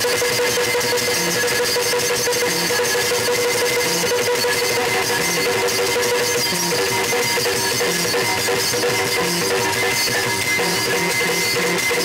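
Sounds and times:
harmonium drone: 0.0 - 12.0
rapid drum strokes: 0.0 - 12.0.

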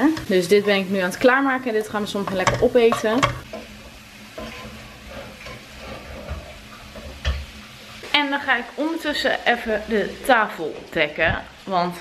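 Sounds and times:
spatula scraping a pan: 0.0 - 8.1
food sizzling in a frying pan: 0.0 - 12.0.

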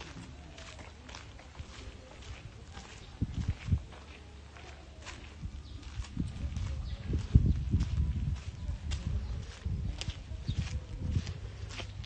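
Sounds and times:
footsteps on gravel: 0.0 - 12.0.

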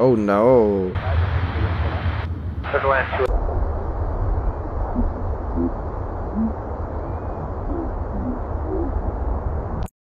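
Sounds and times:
deep rumble: 0.9 - 9.9.

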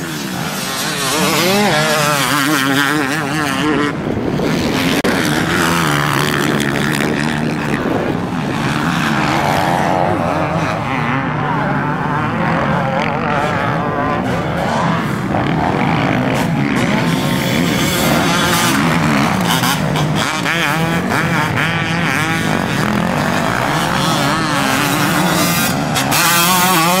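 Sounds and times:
motocross bike engines revving: 0.0 - 27.0
motorbike passing close by: 0.0 - 27.0.

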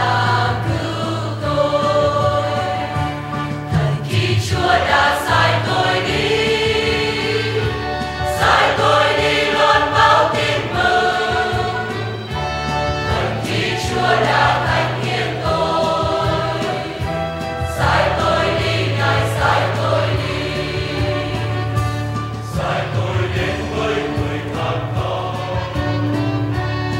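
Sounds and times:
choir singing a hymn: 0.0 - 26.9
instrumental accompaniment: 0.0 - 26.9.

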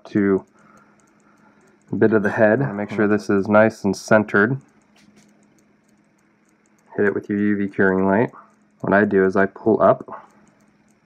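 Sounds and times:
soft clicks: 0.0 - 11.0.

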